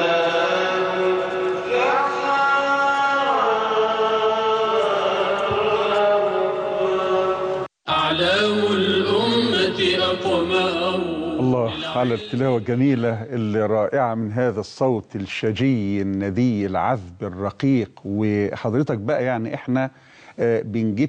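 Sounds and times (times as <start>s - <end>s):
man chanting melodically: 0.0s - 21.0s.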